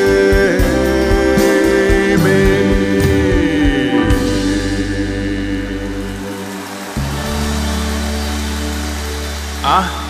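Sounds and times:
person singing: 0.0 - 7.8
band holding sustained chord: 0.9 - 10.0.

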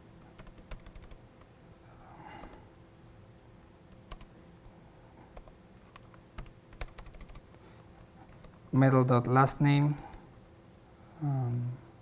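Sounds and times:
laptop keyboard typing: 0.2 - 1.2, 2.4 - 2.6, 3.9 - 4.3, 5.4 - 7.4, 8.2 - 8.8, 9.7 - 10.5.

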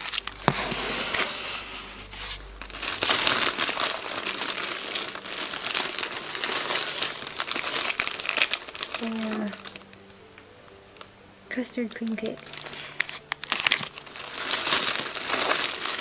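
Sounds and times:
plastic packaging crinkling: 0.0 - 10.4, 11.9 - 16.0.

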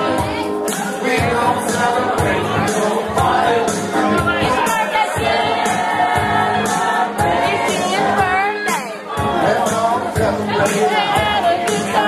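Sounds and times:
man singing into a microphone: 0.0 - 5.3, 9.2 - 12.0
backing track with steady beat: 0.0 - 12.0.

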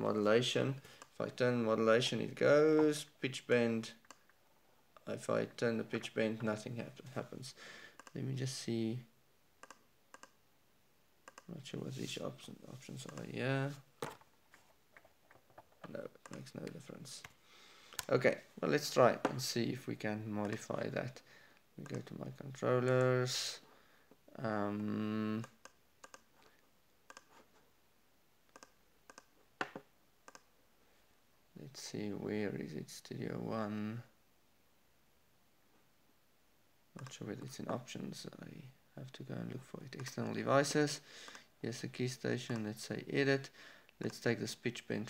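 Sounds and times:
computer mouse clicking: 8.0 - 8.2, 9.6 - 10.4, 11.2 - 11.5, 16.2 - 16.8, 25.4 - 26.3, 27.1 - 27.3, 28.5 - 29.3, 30.3 - 30.5.

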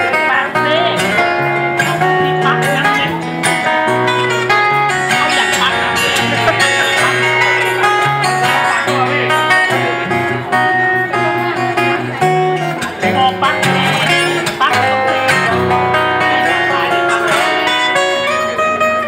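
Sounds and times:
fingerstyle acoustic guitar: 0.0 - 19.0.

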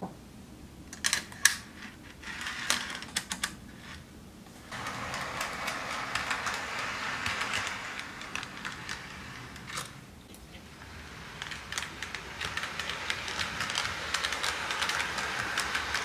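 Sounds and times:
model train cars rattling: 4.6 - 16.0
model train clicks: 4.7 - 10.0, 10.8 - 16.0.

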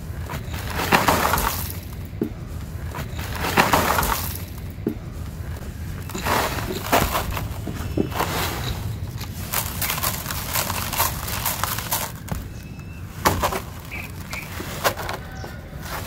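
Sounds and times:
sand and cement crumbling: 0.0 - 16.0.

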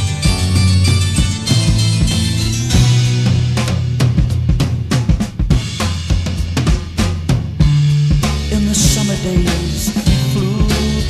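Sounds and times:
drum kit playing: 0.0 - 11.0
sustained bass line: 0.0 - 11.0.

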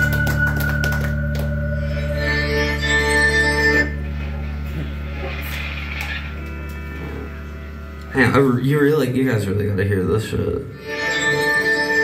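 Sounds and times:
amplified guitar drone: 0.0 - 9.8.

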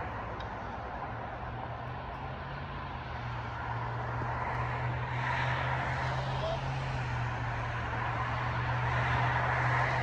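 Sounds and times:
distant vehicle rushing: 0.0 - 10.0.

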